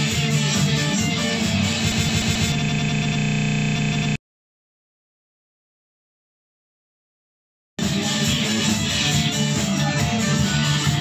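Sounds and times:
harsh repeating buzz: 1.3 - 4.2
rock band with shouted vocals: 7.8 - 11.0.

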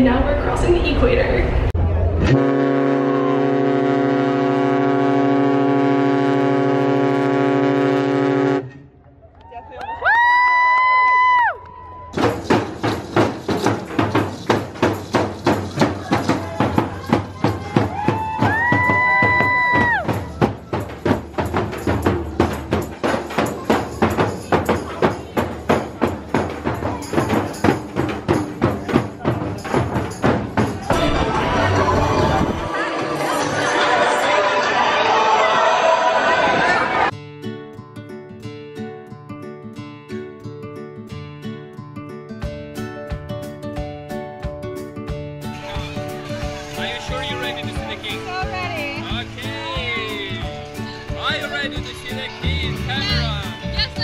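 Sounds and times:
ship's horn blast: 2.2 - 9.0
hand-drum beats: 12.2 - 32.8, 42.4 - 54.0.

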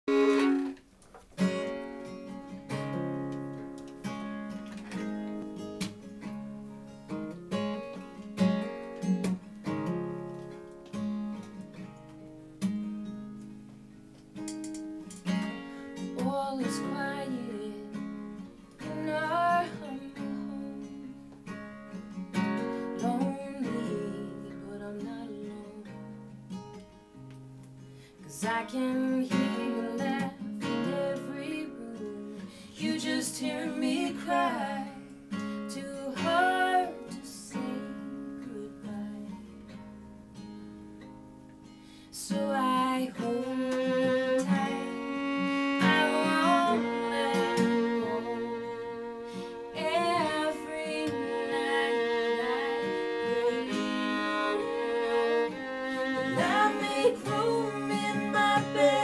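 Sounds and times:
fiddle sliding melody: 0.0 - 0.8, 43.4 - 59.0
acoustic guitar picked and strummed: 0.0 - 59.0.

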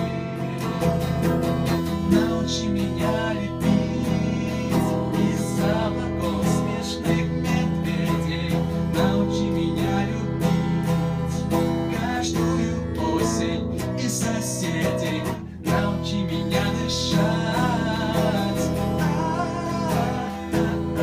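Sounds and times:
electric guitar strummed: 0.0 - 21.0
man singing: 0.0 - 21.0.

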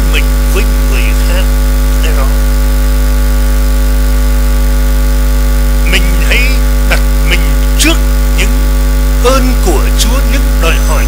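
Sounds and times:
faint voice: 0.0 - 2.4, 5.9 - 8.6
electrical mains hum: 0.0 - 11.0.

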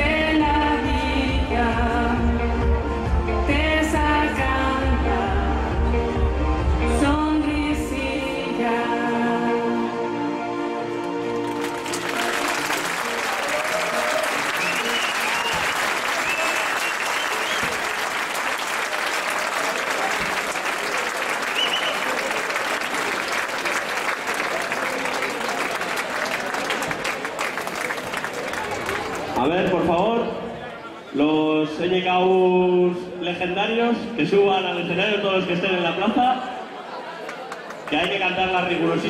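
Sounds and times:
music: 0.0 - 15.8
audience applauding and cheering: 11.1 - 29.8.

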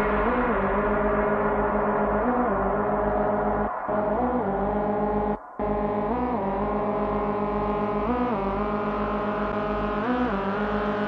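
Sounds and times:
pulsing bass: 0.0 - 11.0
horn-like synth chord bending: 1.5 - 11.0.

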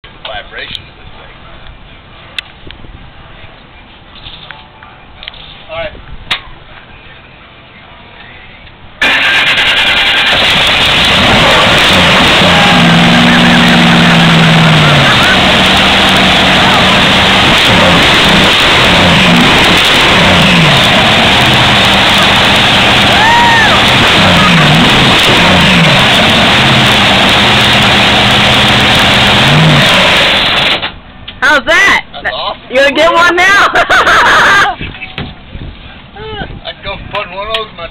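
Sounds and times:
boat engine starting and revving: 9.0 - 31.0.

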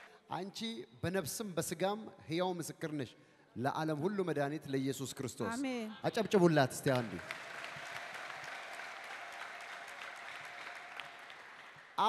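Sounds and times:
crowd clapping: 6.8 - 12.0.

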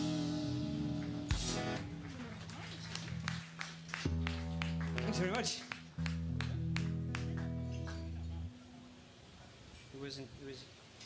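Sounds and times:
low bass notes: 0.0 - 2.0, 4.1 - 8.6
live rock band: 0.0 - 8.2.

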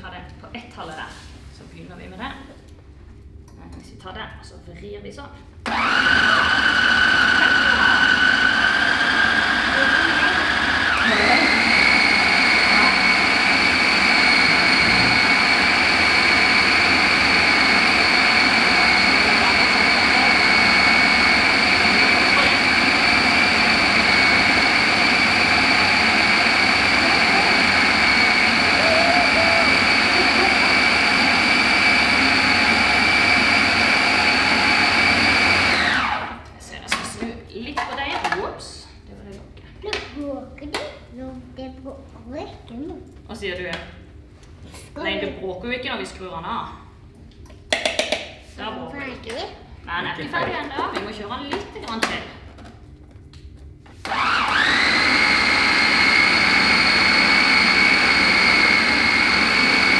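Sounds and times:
food processor motor whining: 5.6 - 36.5, 54.0 - 59.9.

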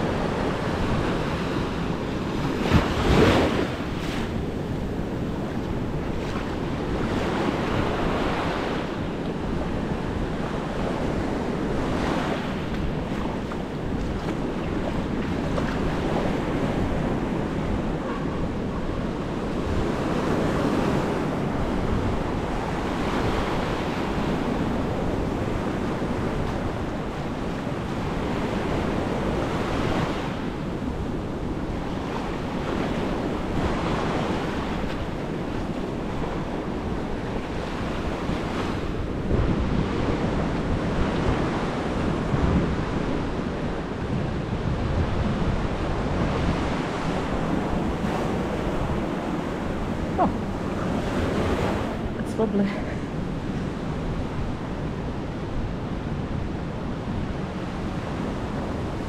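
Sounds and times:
ocean surf on sandy beach: 0.0 - 59.0
wind buffeting microphone: 0.0 - 59.0.

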